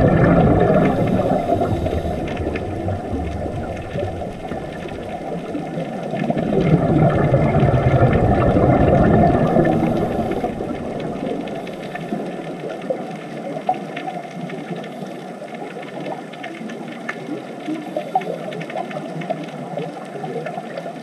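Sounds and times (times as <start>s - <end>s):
watery hiss: 0.0s - 13.0s
regulator bubbles rumbling: 0.0s - 21.0s
faint clicks: 0.2s - 7.6s, 8.4s - 21.0s.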